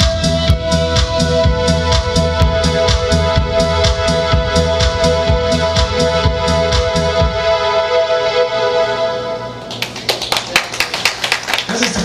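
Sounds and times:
electronic keyboard beat: 0.0 - 8.6
held keyboard chord: 0.0 - 9.7
audience applause: 9.7 - 12.0.

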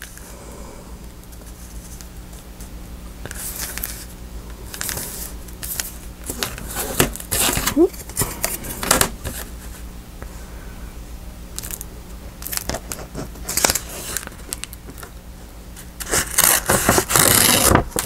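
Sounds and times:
paper and ruler tapping and rustling: 16.0 - 18.0.

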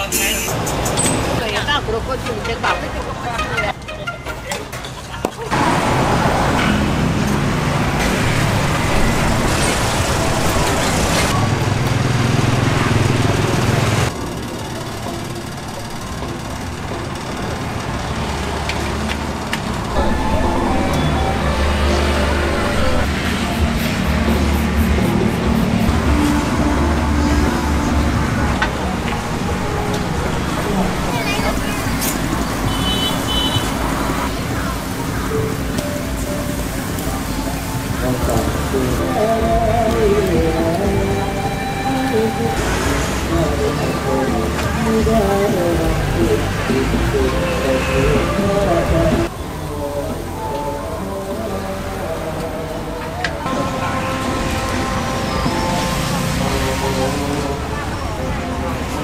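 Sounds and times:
music playing: 0.0 - 5.8, 12.2 - 59.0
street market noise: 0.0 - 59.0
traffic: 0.0 - 59.0
background voices: 33.7 - 59.0.

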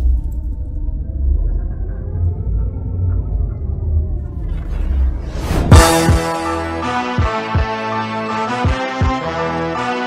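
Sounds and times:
deep rumbling drone: 0.0 - 7.0.

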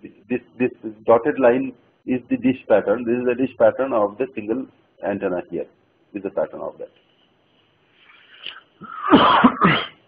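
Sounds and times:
man coughing: 8.8 - 10.0.

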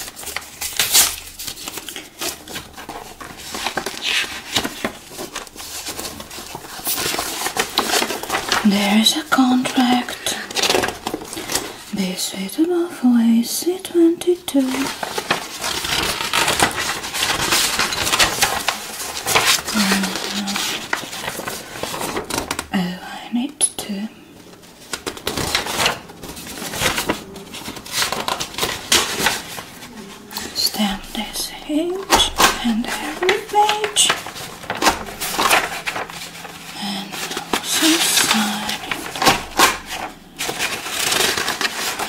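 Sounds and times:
paper rustling and flipping: 0.0 - 12.7, 14.2 - 22.8, 24.3 - 42.0.

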